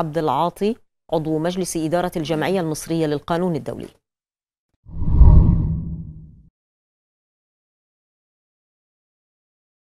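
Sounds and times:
deep whoosh: 4.9s - 6.4s.

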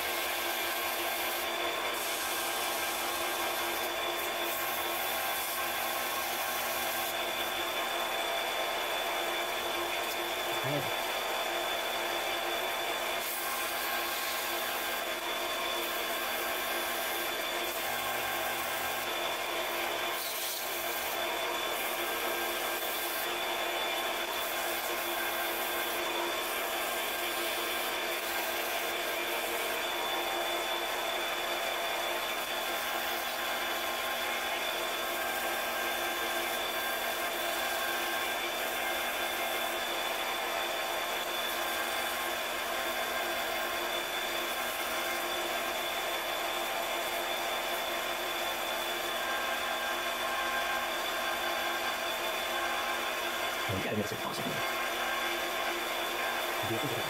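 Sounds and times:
lathe motor whine: 0.0s - 57.0s.

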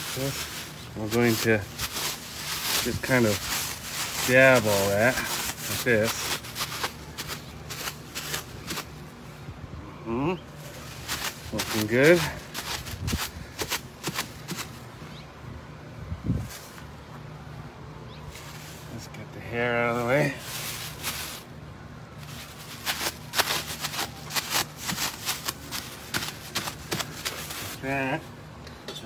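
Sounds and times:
plastic bag crinkling: 0.0s - 9.2s, 10.6s - 14.9s, 19.8s - 28.0s
person humming: 9.9s - 10.4s.

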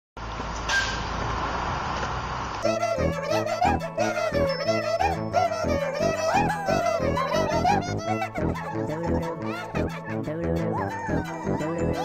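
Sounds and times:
traffic rumble: 0.2s - 3.4s.

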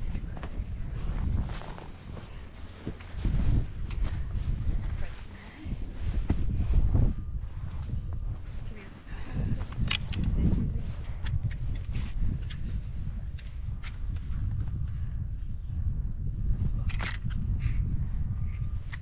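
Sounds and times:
wind on microphone: 0.0s - 19.0s
ski boots crunching in snow: 0.3s - 3.7s.

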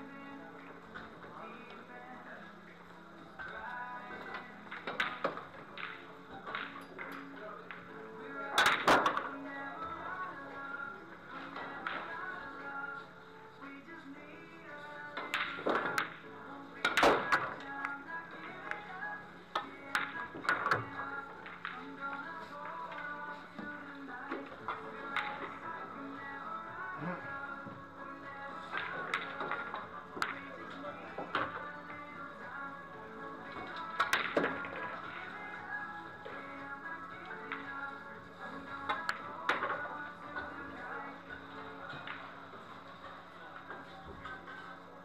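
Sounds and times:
background music: 0.0s - 45.0s
billiard balls clicking: 15.2s - 18.9s, 19.6s - 25.7s, 28.7s - 31.8s, 33.6s - 35.3s.

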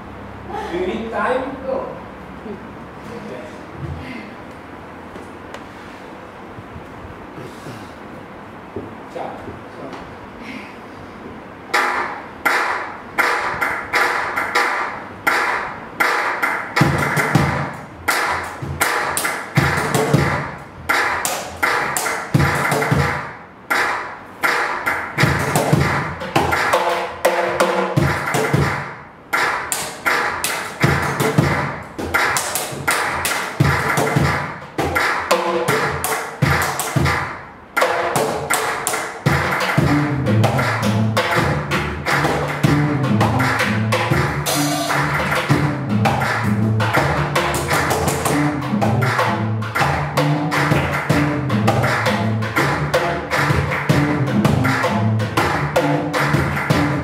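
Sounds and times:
drum set rhythm: 11.6s - 57.0s.

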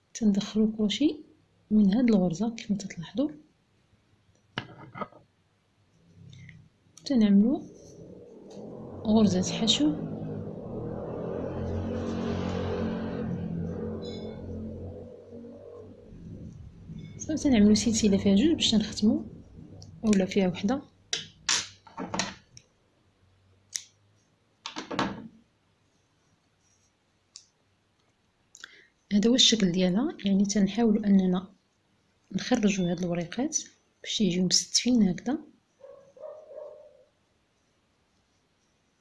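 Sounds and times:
motor vehicle passing by: 6.1s - 21.1s.

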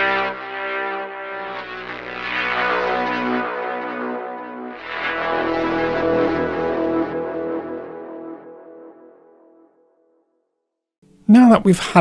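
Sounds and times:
sustained synth chords: 0.0s - 9.7s.

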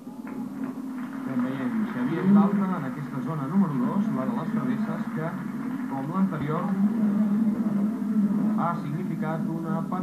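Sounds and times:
man speaking: 1.3s - 7.0s, 8.5s - 10.0s.

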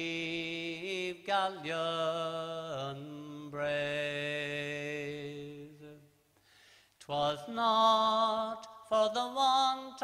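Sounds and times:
man singing unaccompanied: 0.0s - 6.1s, 7.0s - 10.0s.

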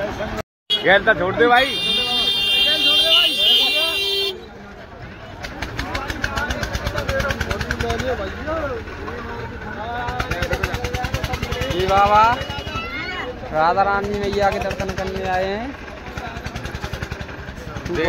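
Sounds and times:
voices talking: 0.0s - 18.0s
small engine running: 5.7s - 12.7s, 13.7s - 18.0s.

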